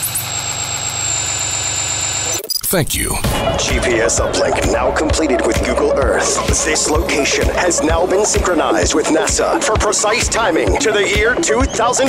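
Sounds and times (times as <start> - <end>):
low electronic humming drone: 0.0 - 2.4, 3.2 - 11.0
thin high steady whine: 0.0 - 2.7.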